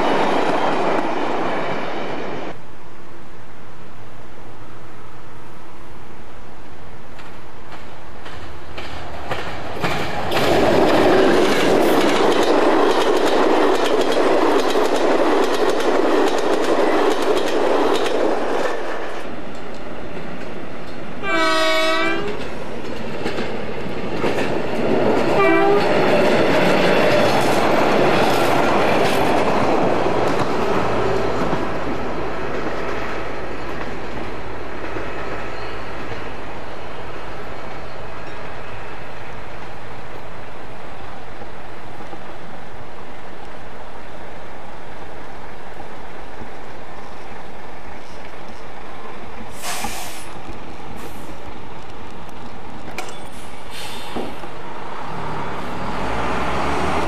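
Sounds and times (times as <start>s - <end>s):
train rumbling past: 0.0s - 57.0s
wheels clicking over rail joints: 7.1s - 36.4s, 51.5s - 53.4s
locomotive horn: 21.2s - 22.4s, 25.4s - 26.0s.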